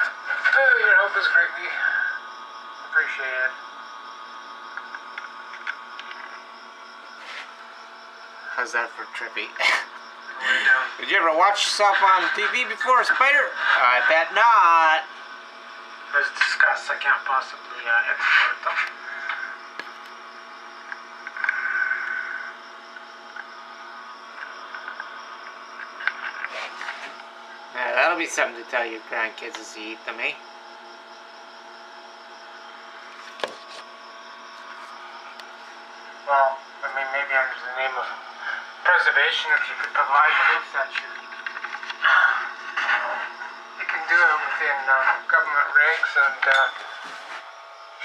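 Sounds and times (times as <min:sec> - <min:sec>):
steady electrical hum: 0:00.0 - 0:48.0.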